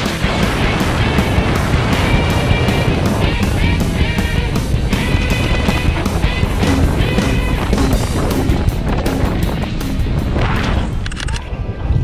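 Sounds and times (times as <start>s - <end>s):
background music with steady beat: 0.0s - 10.4s.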